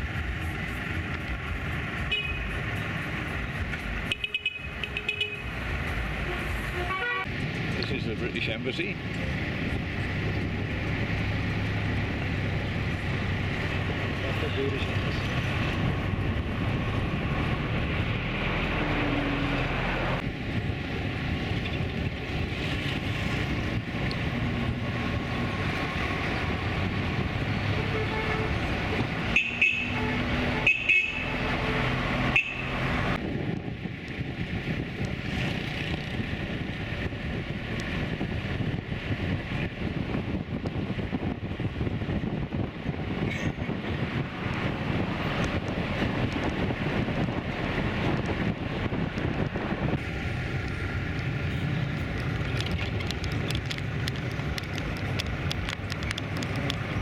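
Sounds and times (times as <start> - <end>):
road and wind noise: 0.0 - 57.0
car horn toots: 4.1 - 5.5, 29.3 - 32.8.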